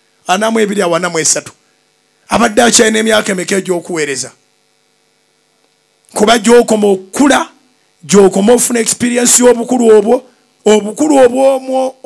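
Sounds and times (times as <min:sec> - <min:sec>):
faint electrical hum: 0:00.0 - 0:12.0
man's amplified voice: 0:00.2 - 0:01.6, 0:02.3 - 0:04.4, 0:06.1 - 0:12.0.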